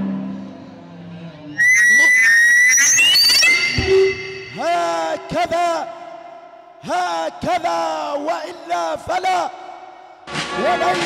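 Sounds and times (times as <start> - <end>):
second gliding tone: 1.6 - 4.8
shrill rising high-pitched tone: 1.6 - 5.2
music: 10.2 - 11.0.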